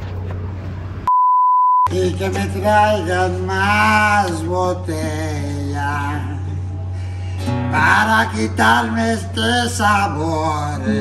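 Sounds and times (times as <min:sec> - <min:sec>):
censor bleep: 0:01.1 - 0:01.9.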